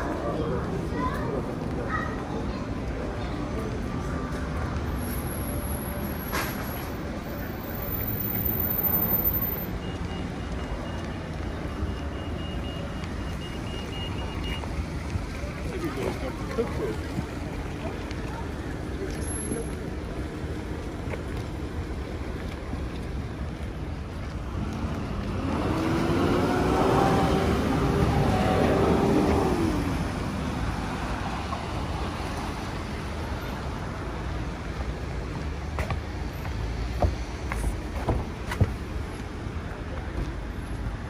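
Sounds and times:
hum of town traffic: 0.0 - 41.0
vehicle passing close by: 24.5 - 31.4.

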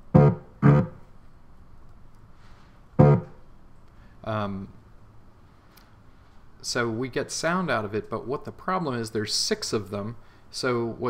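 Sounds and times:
short cello notes: 0.1 - 1.0, 3.0 - 3.4.

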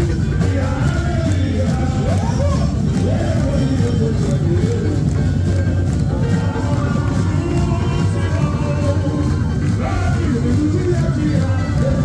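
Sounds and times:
person singing: 0.0 - 12.0
steady percussion beat: 0.0 - 12.0.

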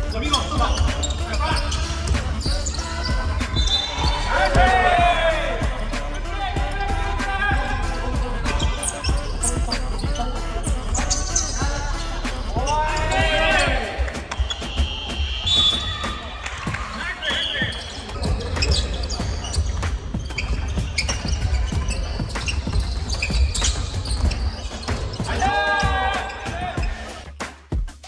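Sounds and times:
high-pitched squeals: 0.0 - 16.4
players' voices calling out: 0.0 - 22.8, 24.0 - 27.2.

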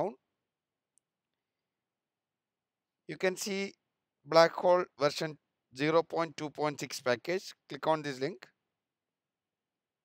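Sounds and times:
person speaking: 3.1 - 3.7, 4.3 - 8.4.

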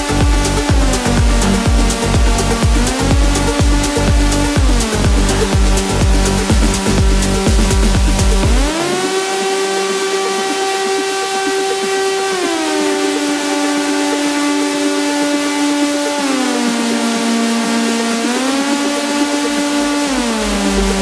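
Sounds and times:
sustained synthesizer note gliding: 0.0 - 21.0.

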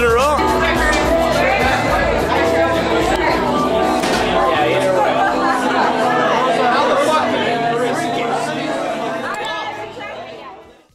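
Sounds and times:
crowd chatter: 0.0 - 10.9.

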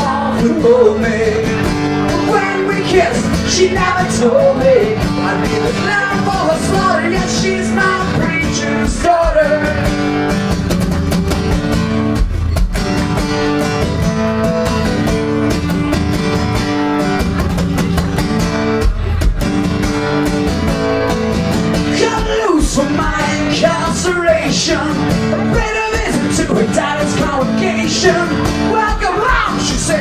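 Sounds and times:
person singing: 0.0 - 10.0, 21.8 - 30.0
acoustic guitar strumming: 0.0 - 30.0.

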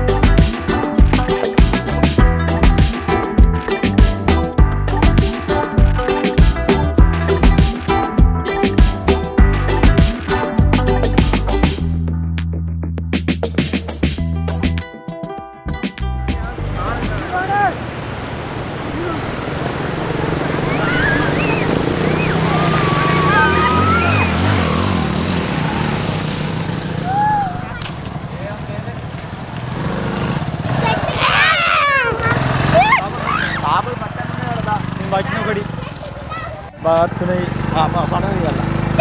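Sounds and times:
people talking and calling out: 16.2 - 17.9, 18.8 - 25.3, 27.0 - 29.3, 30.5 - 39.0
small motorcycle engine running: 19.1 - 31.4, 32.0 - 39.0.

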